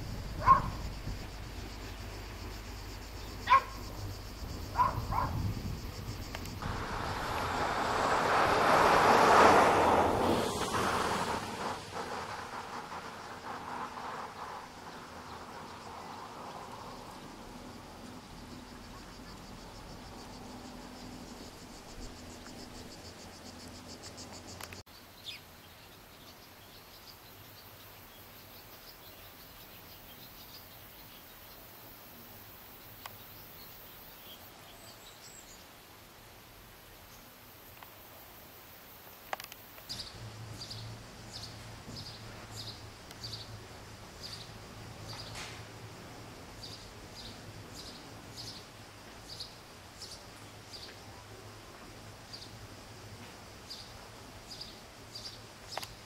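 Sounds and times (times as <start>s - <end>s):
small birds chirping: 0.0s - 7.6s, 39.2s - 45.5s, 46.5s - 51.2s, 53.6s - 56.0s
passing vehicle rushing: 0.0s - 24.8s
faint high insect hiss: 0.0s - 56.0s
dog barking: 0.4s - 0.8s, 3.4s - 3.8s, 4.7s - 5.4s.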